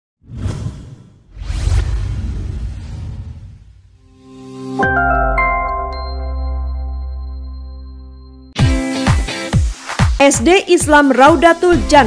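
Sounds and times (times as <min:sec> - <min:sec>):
whoosh sound effects: 0:00.2 - 0:04.1
deep low rumble: 0:01.3 - 0:04.0.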